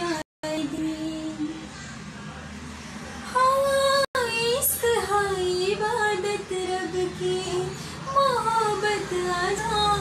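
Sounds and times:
young woman singing unaccompanied: 0.0 - 1.7, 3.3 - 10.0.

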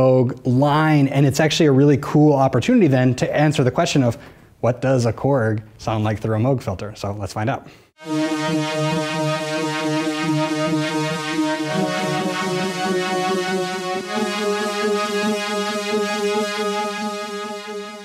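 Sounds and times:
pulsing filtered synthesizer: 8.0 - 18.0.

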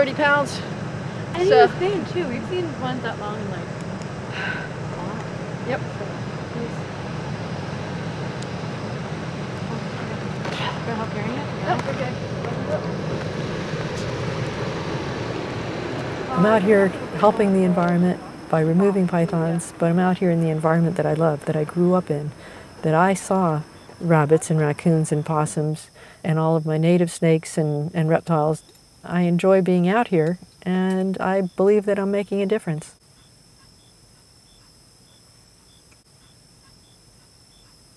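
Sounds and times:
vehicle engine idling: 0.0 - 25.3
insect chirping: 0.0 - 37.9
insects buzzing: 0.0 - 37.9.

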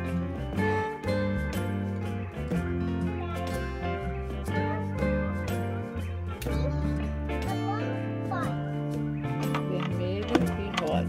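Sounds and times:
background music with bass line: 0.0 - 11.0
voices: 9.4 - 11.0.

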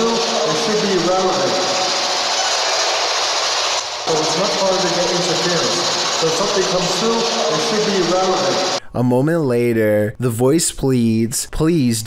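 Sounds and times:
man's voice over static: 0.0 - 2.0, 4.0 - 12.0
choppy radio static hiss: 0.0 - 8.8.

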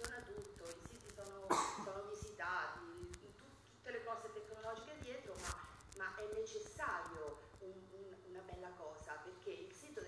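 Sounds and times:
person coughing: 1.5 - 1.9.

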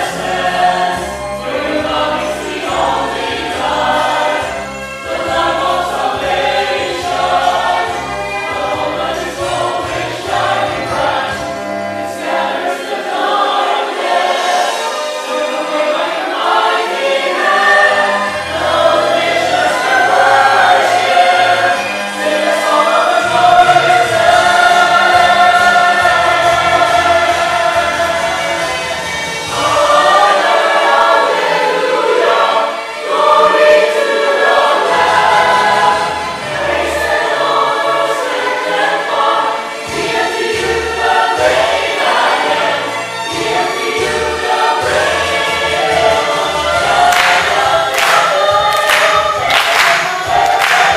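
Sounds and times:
choir singing: 0.0 - 50.9.

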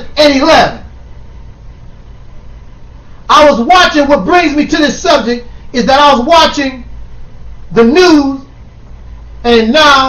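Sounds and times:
faint hiss: 0.0 - 10.0
low hum and rumble: 0.0 - 10.0.

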